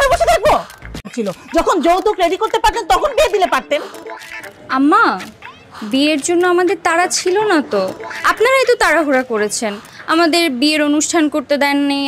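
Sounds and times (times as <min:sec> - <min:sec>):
woman speaking in high voice: 0:00.0 - 0:03.9, 0:04.7 - 0:12.0.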